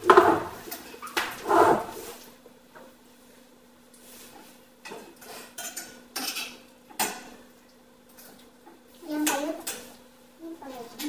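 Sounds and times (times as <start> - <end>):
cutlery clinking on plates: 4.8 - 7.4.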